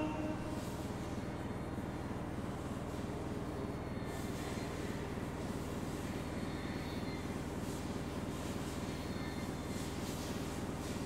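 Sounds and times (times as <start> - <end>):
low fluttering electronic drone: 0.0 - 2.1.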